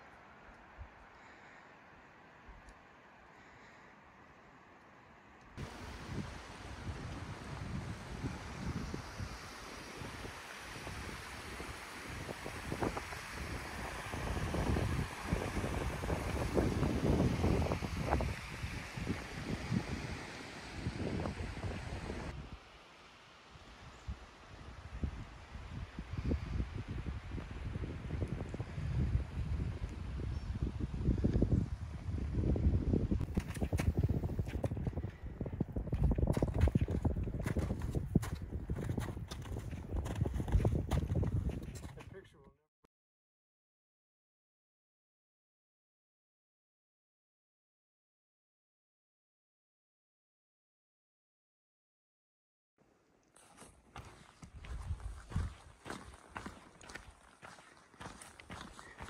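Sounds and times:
wind buffeting microphone: 0:05.6 - 0:20.2, 0:20.8 - 0:22.6, 0:24.1 - 0:42.1, 0:54.0 - 0:59.0.

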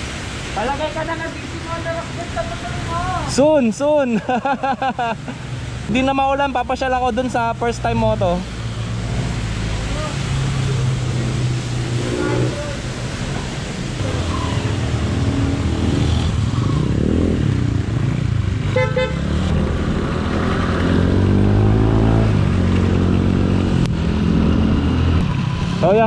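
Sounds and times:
motorcycle engine accelerating: 0:14.0 - 0:18.6, 0:19.2 - 0:25.4.

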